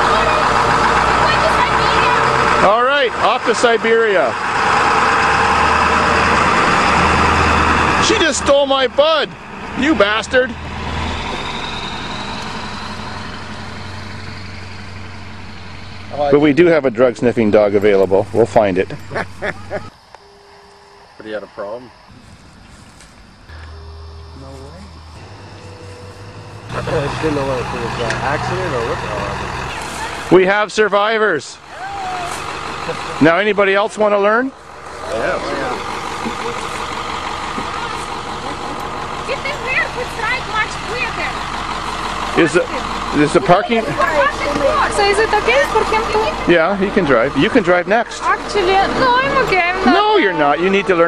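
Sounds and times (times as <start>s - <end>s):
bus engine running: 0.0s - 51.0s
faint high whine: 19.9s - 27.9s.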